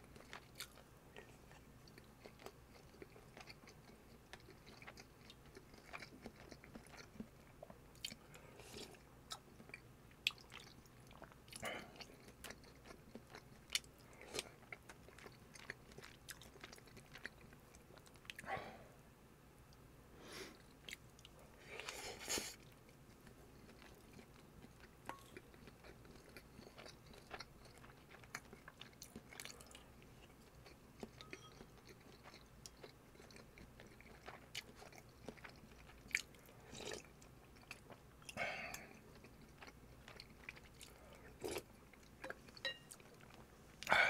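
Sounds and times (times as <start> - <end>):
close chewing of food: 0.0 - 18.6, 20.5 - 44.0.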